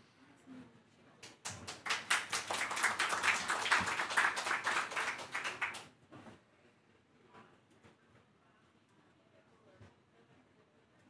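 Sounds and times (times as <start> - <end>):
audience applauding: 1.5 - 5.9.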